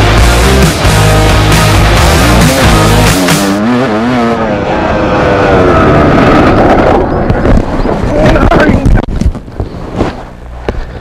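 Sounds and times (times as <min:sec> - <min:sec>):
dirt bike engine revving: 0:00.0 - 0:07.4.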